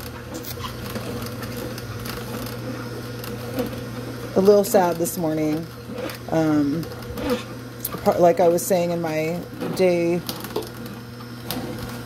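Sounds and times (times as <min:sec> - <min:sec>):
juicer motor humming: 0:00.0 - 0:12.0.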